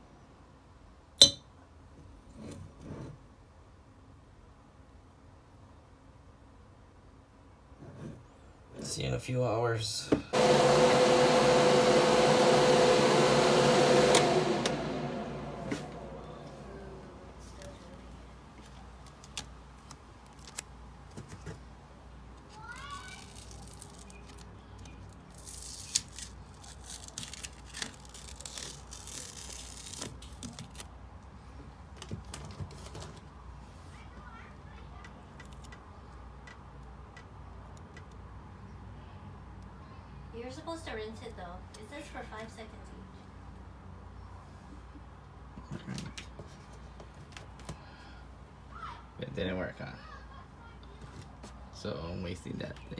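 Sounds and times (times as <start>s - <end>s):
low steady hum: 5.4s - 20.9s
electric blower motor humming: 10.3s - 17.4s
tape peeling clicks: 19.0s - 20.7s, 23.2s - 30.9s.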